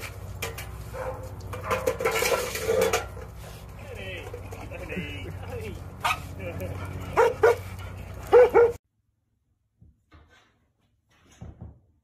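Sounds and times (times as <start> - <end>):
dog barking: 0.9 - 1.2, 7.1 - 7.7, 8.3 - 8.8.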